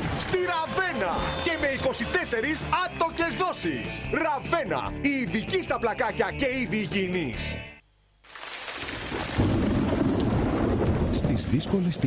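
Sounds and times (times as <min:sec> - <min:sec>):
rain hiss: 0:08.2 - 0:11.8
rolling thunder: 0:09.1 - 0:12.0.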